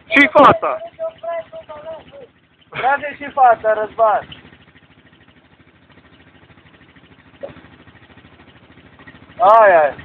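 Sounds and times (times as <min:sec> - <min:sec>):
atv engine running at low revs: 0:00.0 - 0:10.0.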